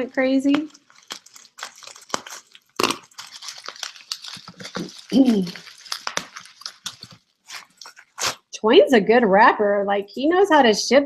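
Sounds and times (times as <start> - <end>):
plastic wrapping crinkling: 0.0 - 8.5.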